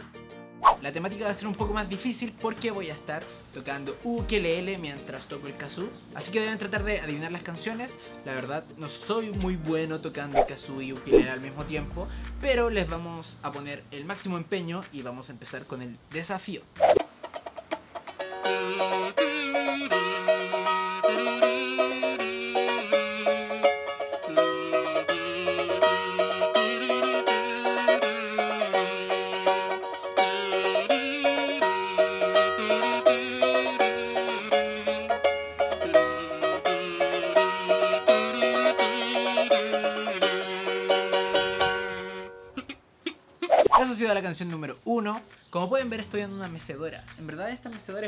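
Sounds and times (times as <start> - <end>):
strummed ukulele: 17.0 - 42.7
metal kazoo buzzing a melody: 18.2 - 43.6.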